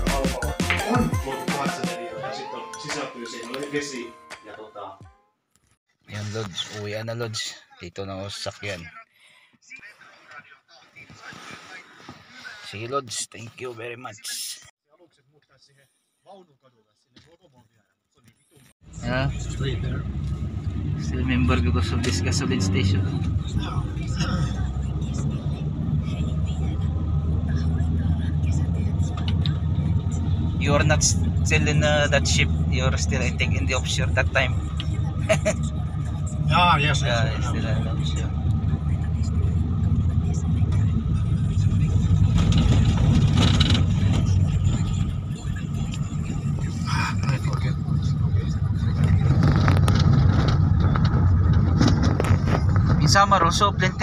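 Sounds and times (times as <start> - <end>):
car engine and tyres rumbling: 18.8 - 54.0.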